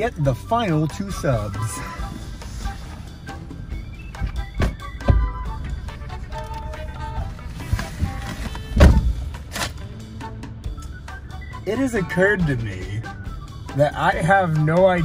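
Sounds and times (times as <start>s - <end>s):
background music: 0.0s - 15.0s
car door thuds: 4.1s - 5.8s, 7.6s - 9.8s.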